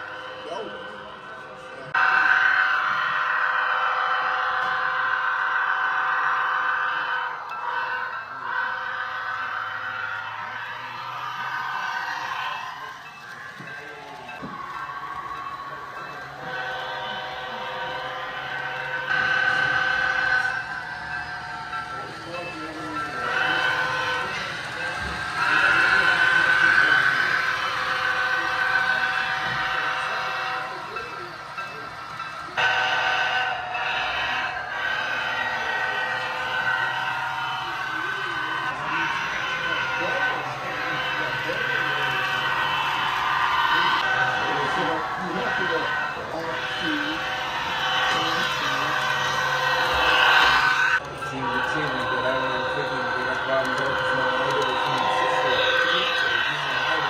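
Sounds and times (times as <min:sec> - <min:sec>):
model locomotive engine and horn tones: 0:00.0 - 0:57.0
murmur of voices: 0:08.1 - 0:57.0.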